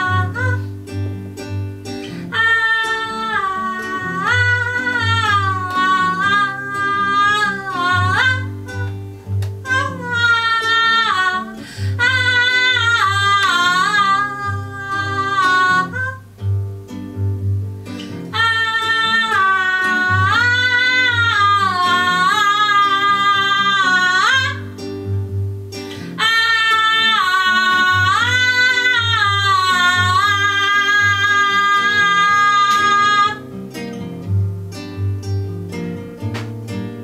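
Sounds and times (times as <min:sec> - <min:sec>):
woman singing: 0:00.0 - 0:01.0, 0:01.9 - 0:16.3, 0:17.9 - 0:25.2, 0:25.8 - 0:34.1
acoustic guitar strumming: 0:00.0 - 0:37.0.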